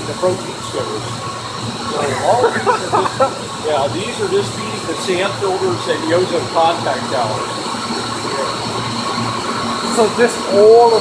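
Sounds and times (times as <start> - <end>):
electric pumps droning: 0.0 - 11.0.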